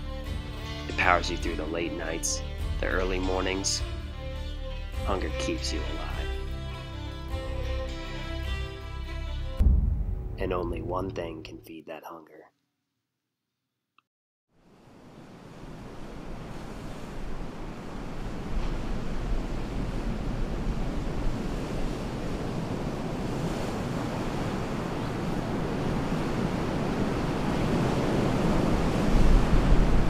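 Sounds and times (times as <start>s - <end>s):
surf breaking against rocks: 15.5s - 30.0s
wind buffeting microphone: 15.6s - 30.0s.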